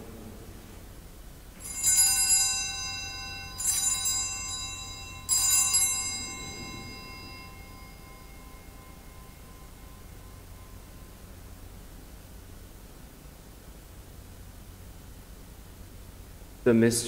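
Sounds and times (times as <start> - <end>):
altar bell ringing: 1.6 - 11.7.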